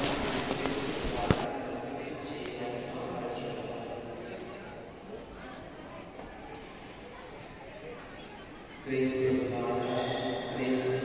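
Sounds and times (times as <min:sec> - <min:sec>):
faint echoing voices: 0:00.0 - 0:11.0.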